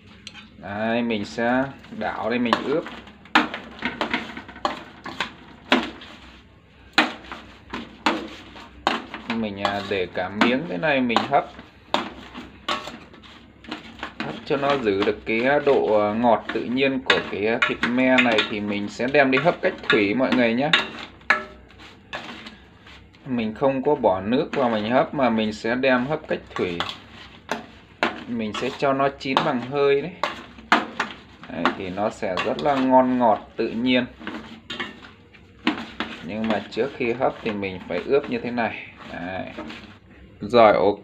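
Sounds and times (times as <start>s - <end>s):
meat shifted in pot: 0.0s - 40.2s.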